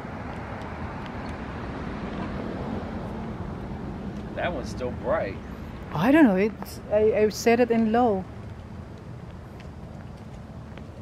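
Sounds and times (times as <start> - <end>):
distant vehicle rumble: 0.0 - 11.0.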